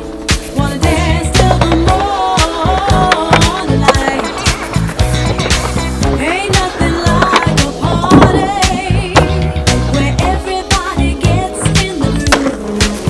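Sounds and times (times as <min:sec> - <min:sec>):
skateboard rolling on concrete: 0:00.0 - 0:13.0
skateboard trucks grinding ledge: 0:00.7 - 0:13.0.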